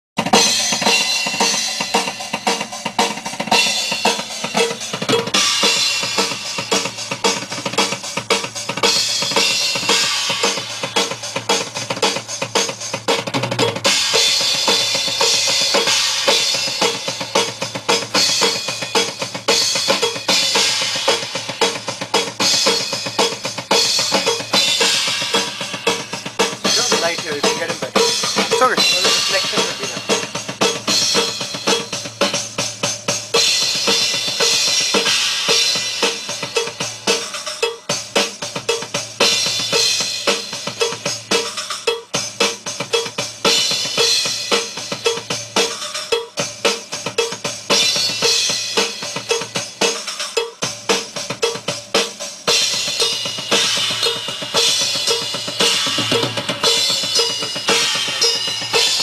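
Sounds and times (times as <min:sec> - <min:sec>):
drum kit playing: 0:00.2 - 0:59.0.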